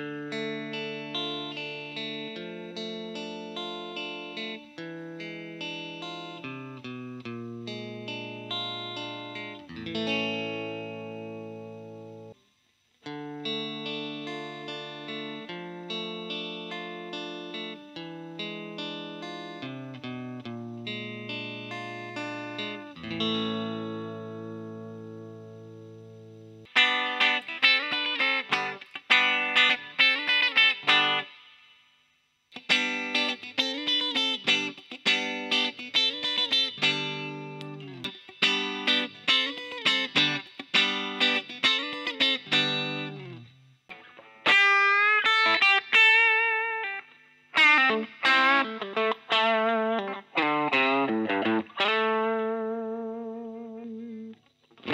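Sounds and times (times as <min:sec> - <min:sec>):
electric guitar through amp: 0:00.0 - 0:12.3, 0:13.0 - 0:31.4, 0:32.6 - 0:54.9.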